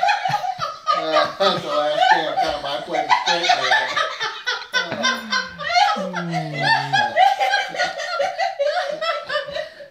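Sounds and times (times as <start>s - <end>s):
man laughing: 0.2s - 9.8s
woman laughing: 3.3s - 9.8s.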